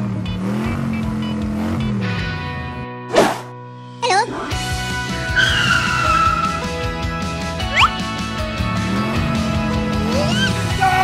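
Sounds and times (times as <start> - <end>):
cartoon tire screech: 5.2 - 6.8, 7.7 - 8.0, 10.1 - 11.0.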